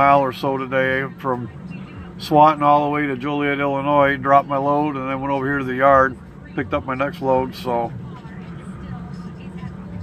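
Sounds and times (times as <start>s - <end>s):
parked truck humming: 0.0s - 10.0s.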